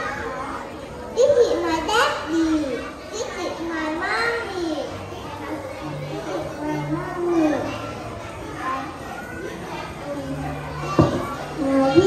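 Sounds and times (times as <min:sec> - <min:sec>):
young children talking: 0:00.0 - 0:12.0.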